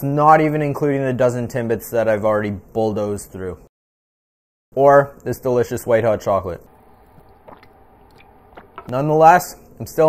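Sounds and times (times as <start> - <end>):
man sipping from a cup: 6.9 - 8.9
mouth and swallow clicks: 7.1 - 8.9.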